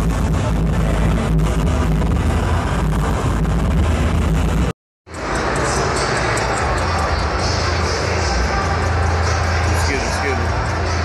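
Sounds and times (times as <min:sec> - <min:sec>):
loud music with heavy bass: 0:00.0 - 0:11.0
crowd hubbub: 0:05.1 - 0:11.0.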